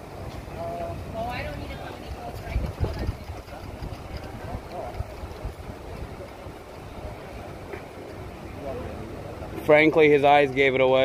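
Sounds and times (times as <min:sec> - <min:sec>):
distant voices talking: 0:00.4 - 0:11.0.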